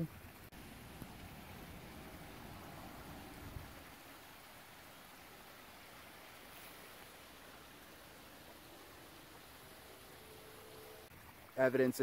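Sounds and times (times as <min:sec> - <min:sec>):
stream rushing: 0:00.0 - 0:12.0.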